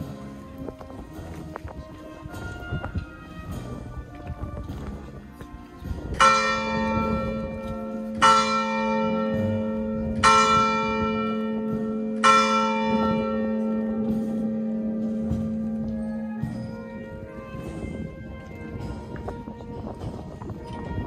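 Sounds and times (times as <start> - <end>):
church bell tolling: 6.1 - 21.0.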